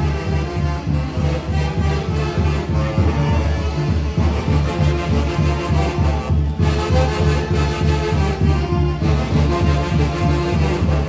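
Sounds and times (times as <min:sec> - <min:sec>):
lively band dance music: 0:00.0 - 0:11.0.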